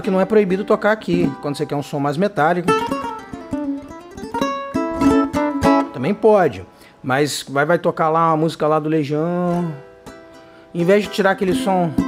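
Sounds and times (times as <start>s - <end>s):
ukulele strumming: 0.0s - 6.9s, 9.2s - 12.0s.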